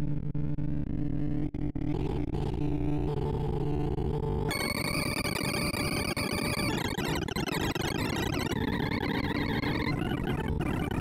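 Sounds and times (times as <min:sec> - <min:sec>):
rapid synthesized beeps: 0:04.5 - 0:11.0.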